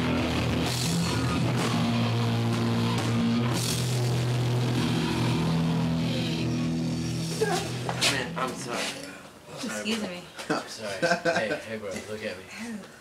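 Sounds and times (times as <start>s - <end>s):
rock band playing: 0.0s - 8.5s.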